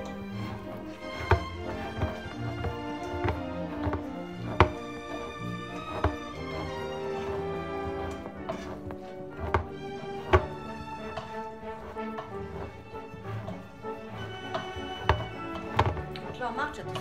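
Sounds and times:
background music with held notes: 0:00.0 - 0:17.0
manual can opener clicking: 0:00.0 - 0:17.0.

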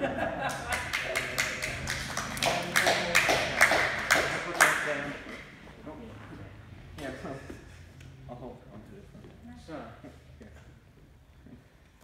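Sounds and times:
people clapping: 0:00.3 - 0:05.5.

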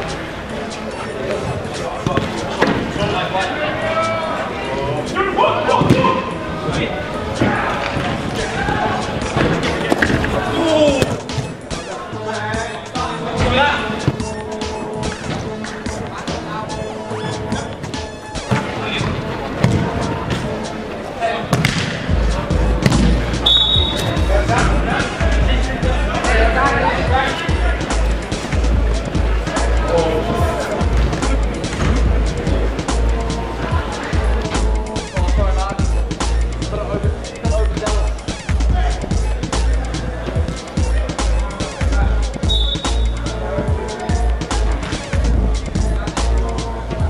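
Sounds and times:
players shouting: 0:00.0 - 0:47.0
steady low bass: 0:22.1 - 0:26.9, 0:27.5 - 0:42.4.

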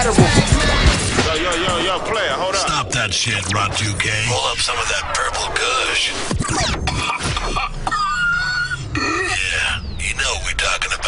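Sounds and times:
high-pitched squealing laugh: 0:06.4 - 0:09.6.

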